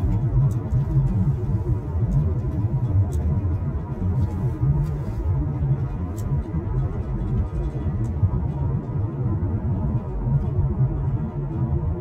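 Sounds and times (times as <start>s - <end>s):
car road rumble inside cabin: 0.0s - 12.0s.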